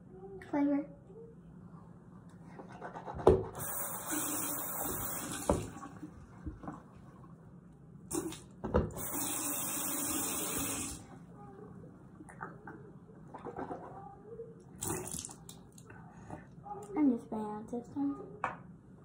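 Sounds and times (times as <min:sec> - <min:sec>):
tap running into sink: 0:04.7 - 0:05.8
water splashing into basin: 0:14.8 - 0:15.6.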